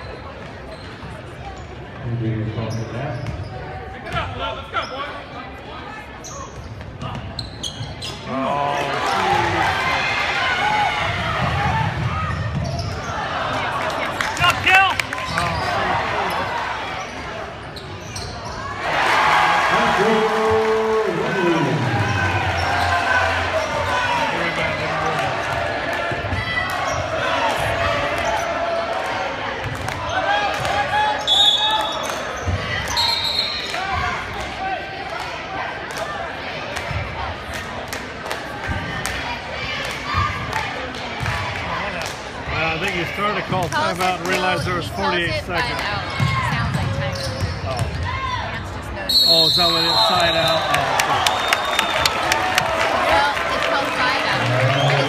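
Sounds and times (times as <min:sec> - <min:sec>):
crowd chatter and shouts: 0:00.0 - 0:55.0.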